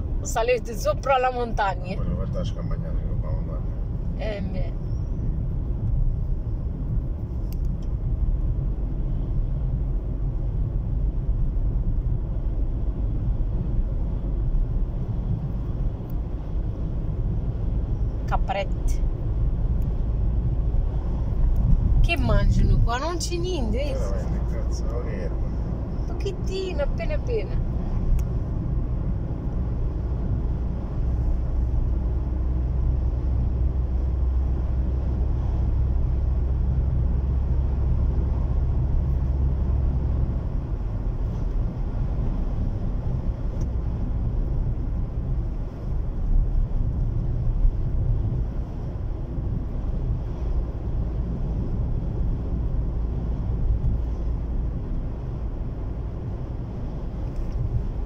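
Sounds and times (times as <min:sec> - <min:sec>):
car cabin road rumble: 0:00.0 - 0:58.0.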